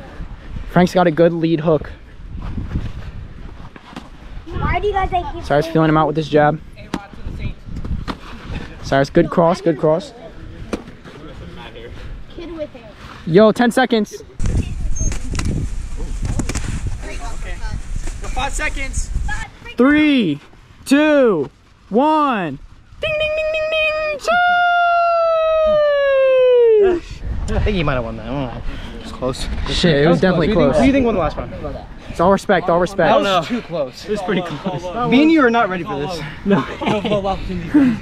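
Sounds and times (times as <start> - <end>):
person yelling: 23.0 - 27.1.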